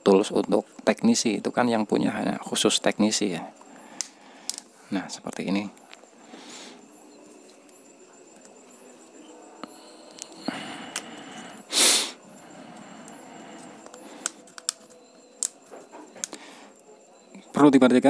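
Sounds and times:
small clicks: 0:13.8 - 0:15.6.

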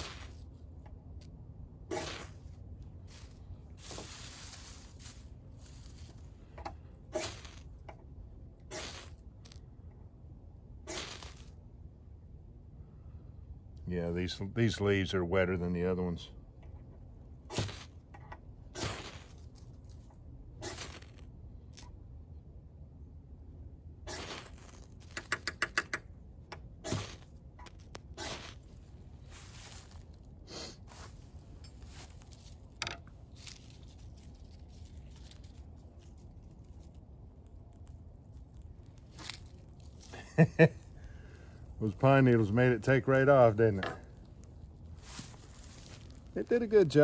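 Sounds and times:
dead leaves rustling and crackling: 0:00.0 - 0:00.6, 0:01.9 - 0:06.5, 0:07.1 - 0:07.8, 0:08.7 - 0:09.6, 0:10.9 - 0:11.6, 0:18.8 - 0:21.9, 0:24.1 - 0:25.2, 0:27.0 - 0:47.0.

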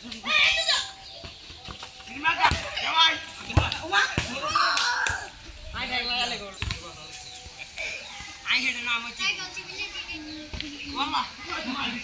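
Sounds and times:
football thud on dirt ground: 0:01.2 - 0:05.2, 0:06.4 - 0:07.0.

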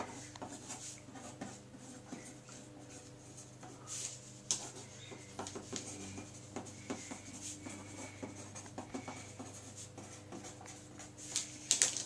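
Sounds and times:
pen scratching on paper: 0:00.0 - 0:11.4
faint low hum: 0:00.0 - 0:12.0.

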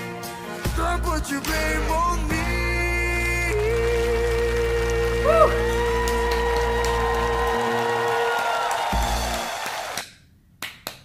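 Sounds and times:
person clapping: 0:03.5 - 0:11.0.

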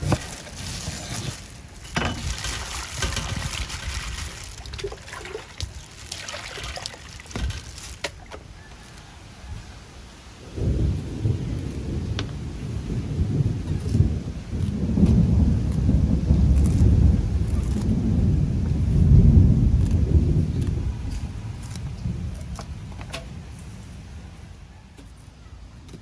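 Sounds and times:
low rumbling noise: 0:09.3 - 0:24.7.

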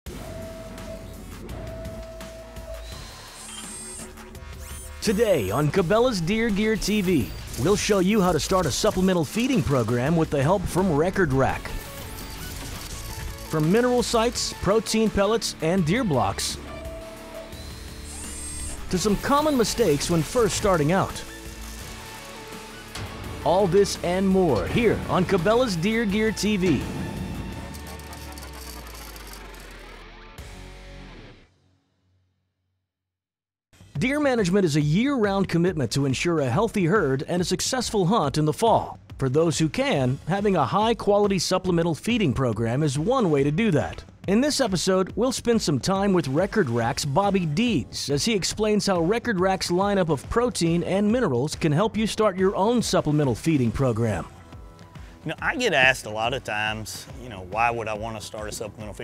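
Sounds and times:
intro music: 0:00.1 - 0:31.4
mechanical clicks: 0:11.6 - 0:13.9, 0:26.9 - 0:29.8.

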